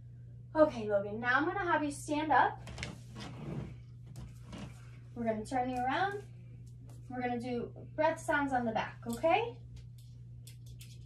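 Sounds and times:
steady low hum: 0.0s - 11.0s
rustling and shuffling on bed: 2.7s - 5.1s.

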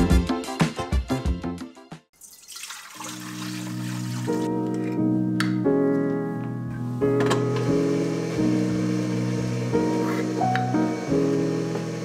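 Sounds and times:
liquid pouring into steel bowl: 2.2s - 4.5s.

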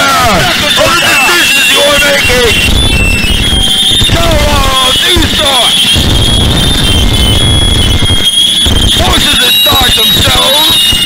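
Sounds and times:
high-pitched squeal: 0.0s - 11.0s
distorted low rumble: 2.1s - 9.2s.

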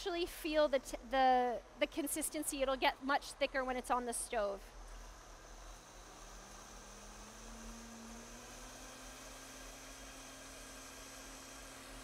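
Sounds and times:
blender motor running: 4.9s - 12.0s.

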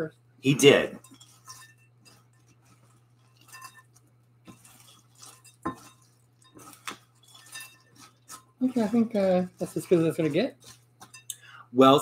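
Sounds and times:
spatula scraping glass bowl: 0.6s - 11.3s.

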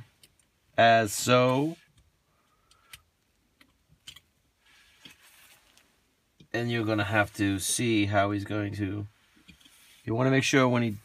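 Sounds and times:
soft rustle: 4.4s - 11.0s.

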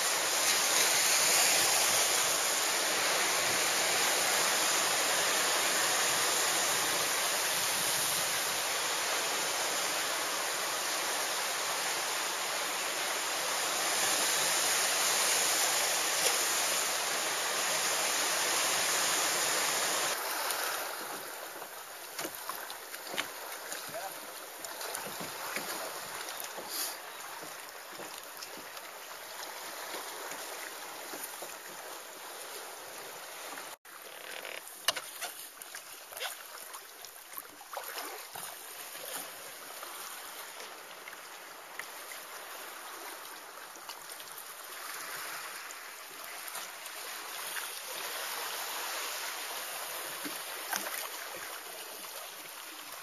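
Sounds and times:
paddle drips and splashes: 0.0s - 53.0s
water lapping against a kayak: 0.0s - 53.0s.

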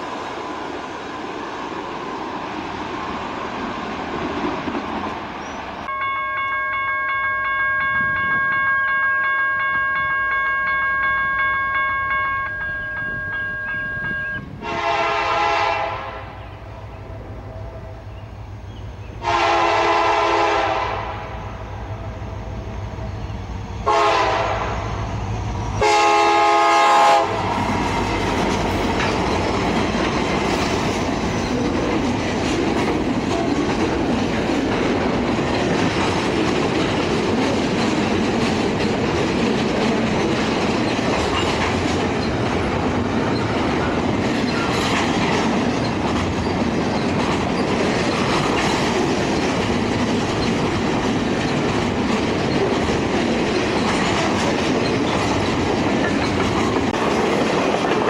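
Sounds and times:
freight train wheels rumbling on rails: 0.0s - 58.0s
locomotive horn: 5.9s - 16.6s, 19.2s - 21.6s, 23.8s - 25.0s, 25.8s - 27.4s.

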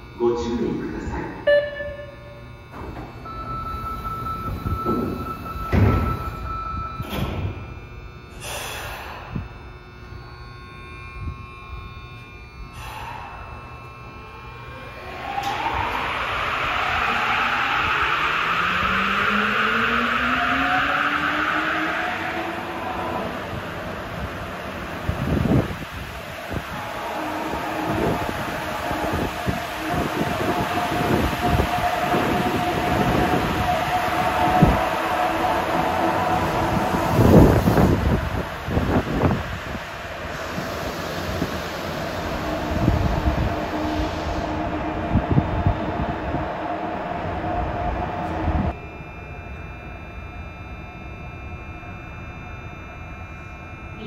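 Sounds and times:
subway train motor whine: 0.0s - 54.0s
train cars thumping and rumbling: 2.7s - 7.8s.

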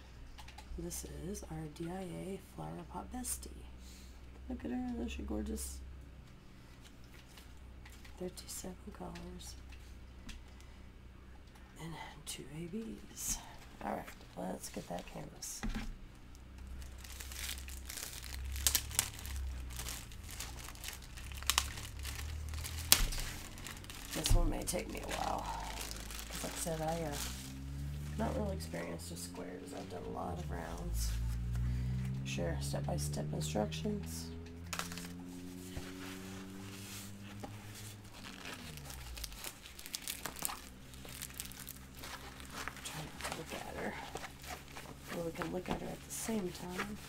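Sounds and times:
plastic packaging crinkling: 16.4s - 28.6s, 34.7s - 35.2s, 37.6s - 47.0s.

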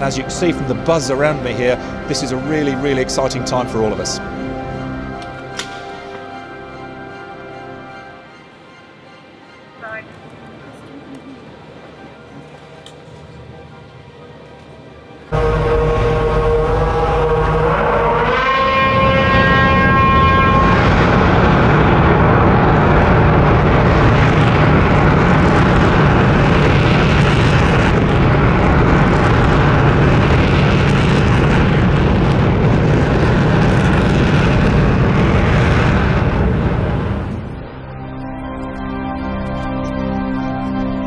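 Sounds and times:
engine whine rising: 15.2s - 41.0s
rocket roaring: 15.3s - 37.8s.

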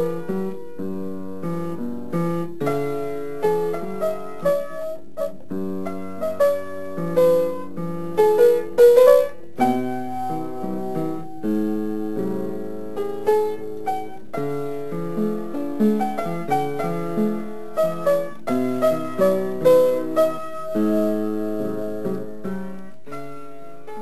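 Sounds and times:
solo piano: 0.0s - 24.0s.

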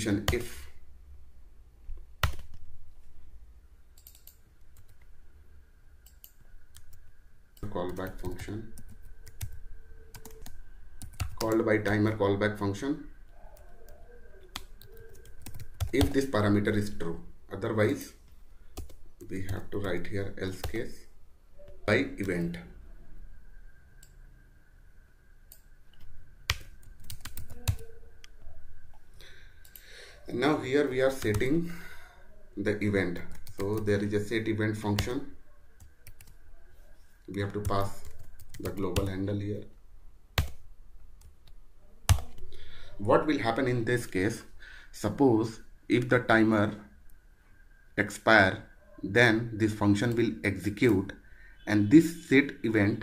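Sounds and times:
low steady hum: 0.0s - 53.0s
computer keyboard typing: 2.2s - 2.6s, 4.0s - 5.1s, 6.0s - 7.0s, 7.6s - 12.0s, 13.6s - 16.3s, 18.8s - 19.9s, 20.6s - 20.8s, 25.5s - 28.3s, 31.1s - 31.5s, 33.2s - 34.0s, 35.8s - 36.4s, 37.3s - 39.2s, 40.4s - 40.6s, 41.2s - 42.5s.

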